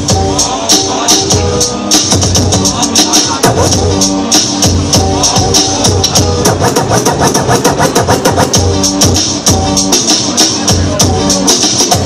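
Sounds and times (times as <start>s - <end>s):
hip-hop beat from vinyl: 0.0s - 12.0s
record scratching by hand: 5.7s - 8.8s.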